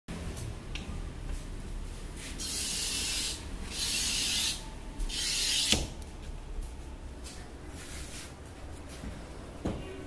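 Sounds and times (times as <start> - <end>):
glass cutter scoring glass: 2.4 - 5.9.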